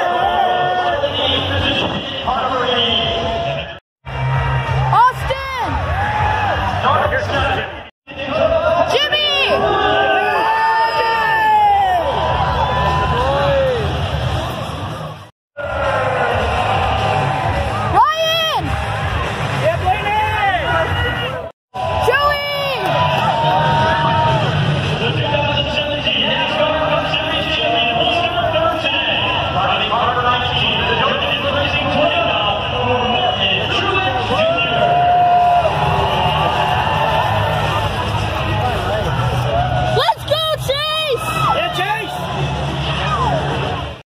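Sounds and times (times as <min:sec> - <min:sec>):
crowd cheering and shouting: 0:00.0 - 0:44.0.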